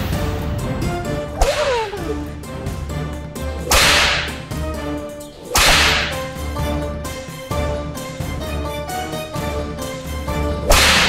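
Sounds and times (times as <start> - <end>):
dramatic music with pulsing beat: 0.0 - 11.0
whip cracking: 1.3 - 2.3, 3.6 - 4.6, 5.4 - 6.4, 10.6 - 11.0.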